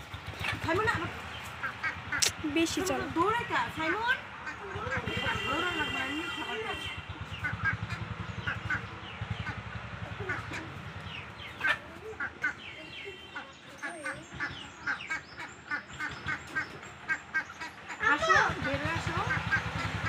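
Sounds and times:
chickens chirping and clicking: 0.0 - 3.1, 7.2 - 20.0
chickens clucking: 0.0 - 6.1, 7.1 - 20.0.

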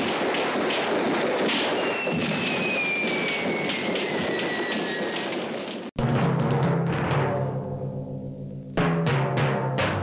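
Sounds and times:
fireworks crackling and popping: 0.0 - 6.0
falling firework whistle: 1.5 - 5.9.

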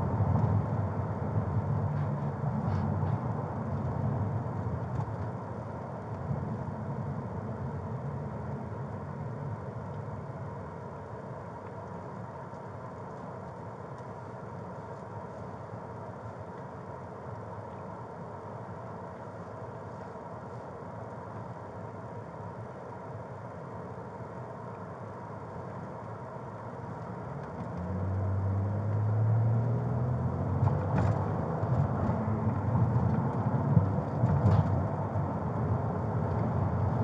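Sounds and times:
road noise inside car: 0.0 - 37.0
car engine: 27.2 - 37.0.

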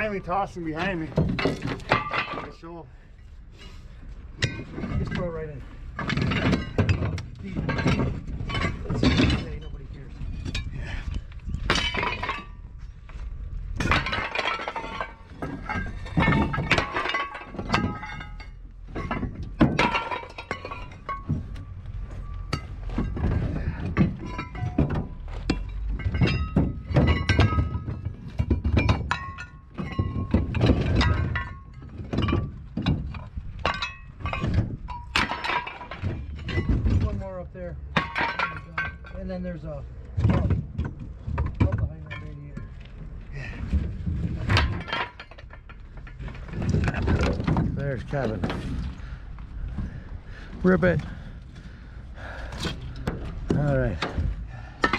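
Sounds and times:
scrap metal clanking onto pile: 0.0 - 2.7, 4.4 - 10.7, 11.6 - 12.6, 13.7 - 37.3, 37.9 - 39.4, 43.6 - 49.1, 52.2 - 54.9.

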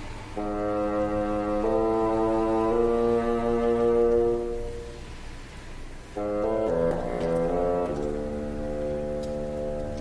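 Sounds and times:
bassoon playing long notes: 0.3 - 5.2, 6.0 - 10.0.

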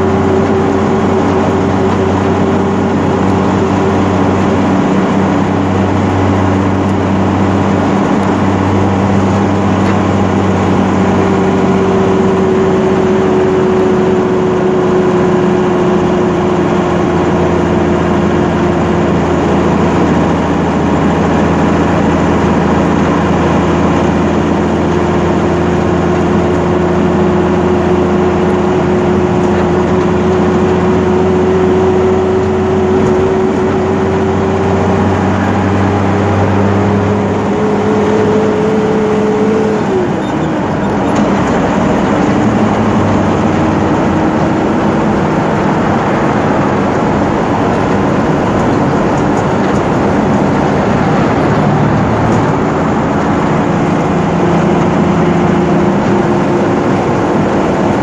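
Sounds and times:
truck diesel engine running: 0.0 - 58.0.

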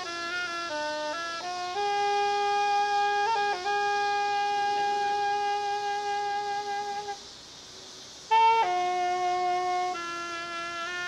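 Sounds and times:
solo saxophone melody: 0.0 - 7.2, 8.3 - 11.0.

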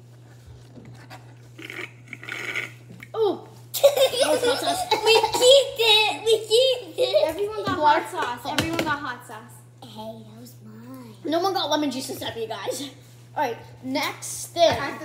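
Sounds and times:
girl laughing: 3.8 - 7.3.

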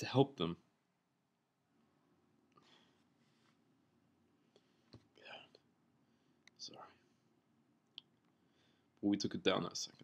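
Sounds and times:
man breathing softly: 2.5 - 3.6, 8.3 - 9.0.

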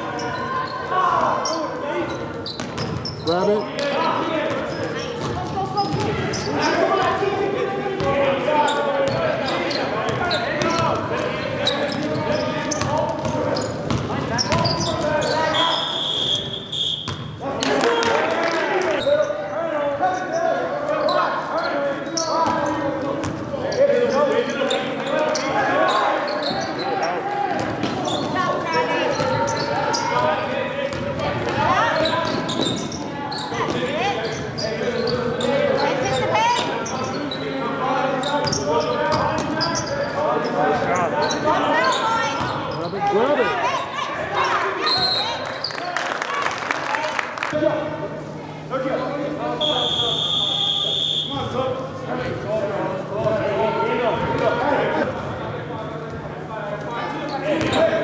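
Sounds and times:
players calling out: 0.0 - 48.7, 49.3 - 58.0
basketball bouncing on court: 2.5 - 3.2, 4.5 - 6.4, 10.1 - 11.3, 11.9 - 15.3.

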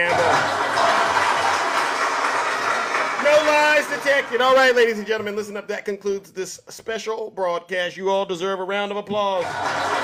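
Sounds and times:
crowd applauding: 0.0 - 5.1, 9.4 - 10.0.

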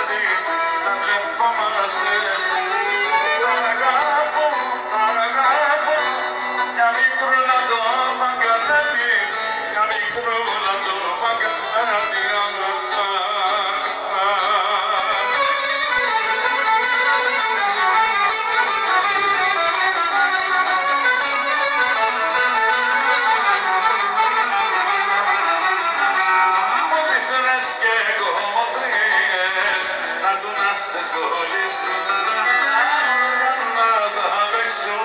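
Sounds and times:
clarinet: 0.0 - 6.8, 13.8 - 27.8
violin: 0.0 - 35.0.

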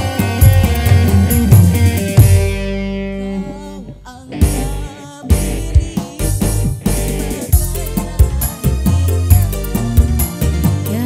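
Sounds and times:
drums: 0.0 - 3.0, 4.3 - 11.0
electric guitar: 0.0 - 11.0
live band playing: 0.0 - 11.0.

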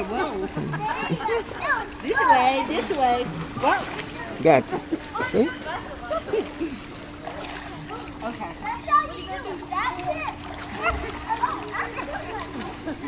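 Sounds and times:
pool water splashing: 0.0 - 13.0
children's voices: 0.7 - 2.7, 7.8 - 13.0.

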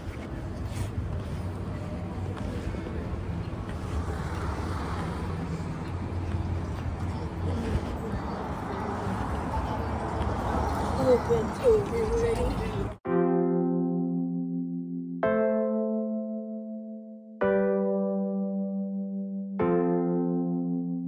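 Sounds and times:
rumble of passing cars: 0.0 - 13.0.

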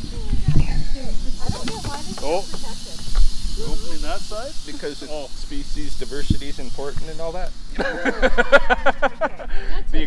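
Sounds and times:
rattlesnake rattling: 0.0 - 10.0
voices and laughter: 7.5 - 10.0.

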